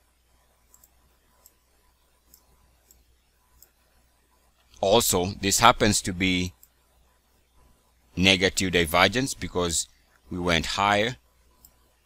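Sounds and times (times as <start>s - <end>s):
computer mouse clicks: 0.6s - 1.6s, 2.2s - 3.8s, 11.6s - 11.9s
man's voice: 4.8s - 6.5s, 8.2s - 11.2s.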